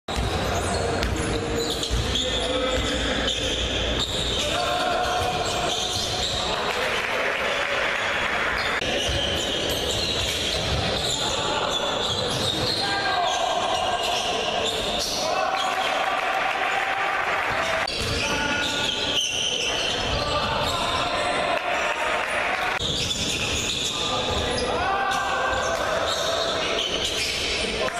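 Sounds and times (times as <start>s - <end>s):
basketball bouncing on wooden court: 0.1s - 2.9s, 8.9s - 11.2s, 17.9s - 18.3s
voices in a hall: 0.1s - 27.9s.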